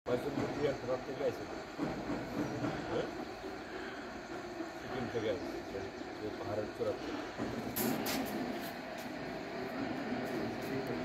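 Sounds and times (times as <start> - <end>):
men murmuring conversation: 0.1 - 11.0.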